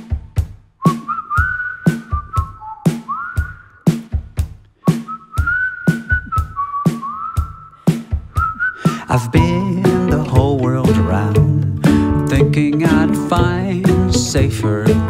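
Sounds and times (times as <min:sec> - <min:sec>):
drum beat: 0:00.0 - 0:15.0
person whistling a melody: 0:00.8 - 0:04.0, 0:04.8 - 0:15.0.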